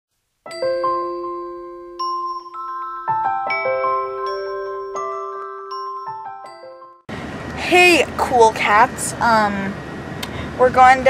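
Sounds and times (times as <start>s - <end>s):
bell-like chime jingle: 0.5s - 7.1s.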